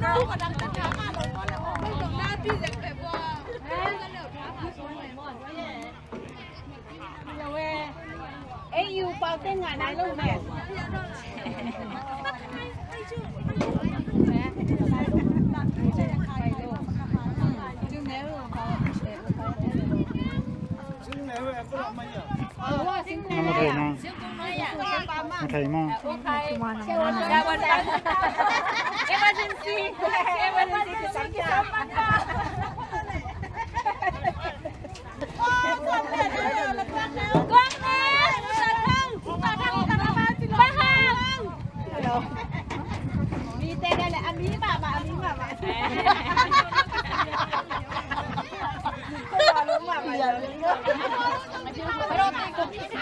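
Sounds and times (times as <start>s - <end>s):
people chattering: 0.0s - 53.0s.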